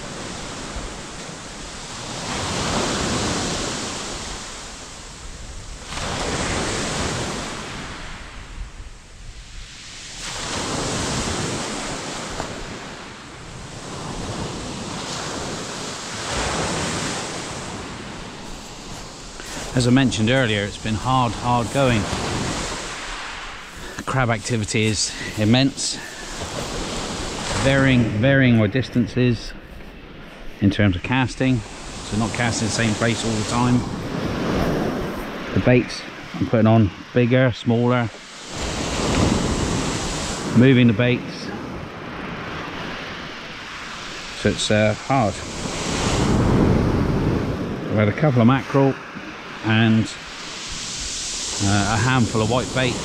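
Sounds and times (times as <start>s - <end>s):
wind rumbling on microphone: 0.0s - 37.0s, 45.3s - 48.3s
waves washing on shingle beach: 0.0s - 53.0s.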